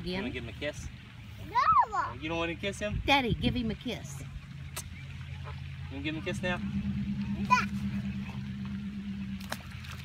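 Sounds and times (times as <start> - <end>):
low hum: 3.3 - 10.0.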